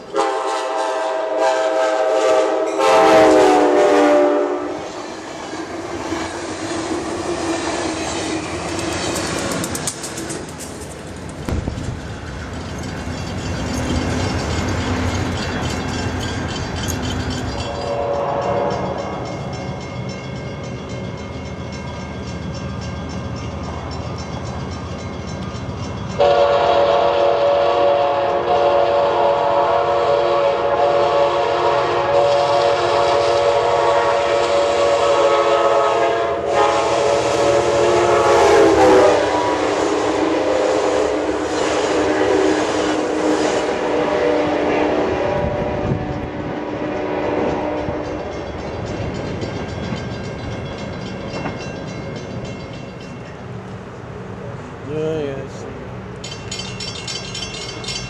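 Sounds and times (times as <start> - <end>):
passenger train rumbling: 0.0 - 58.0
train horn blast: 0.1 - 5.0, 17.6 - 19.2, 26.2 - 48.4.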